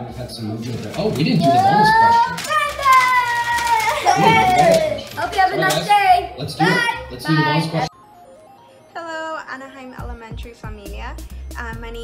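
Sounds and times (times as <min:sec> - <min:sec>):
children shrieking: 0:01.4 - 0:05.3.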